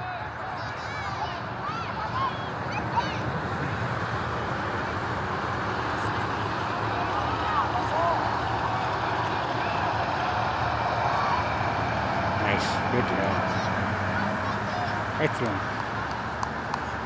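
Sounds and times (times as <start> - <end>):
distant voices calling out: 0.0 - 17.0.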